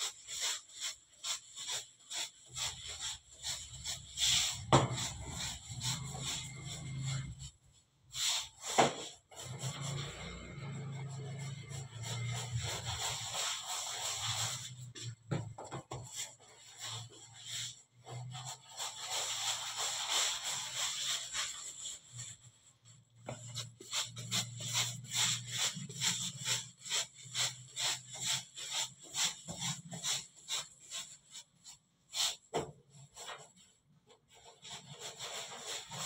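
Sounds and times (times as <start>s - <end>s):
hands rolling dough on table: 0.0s - 36.0s.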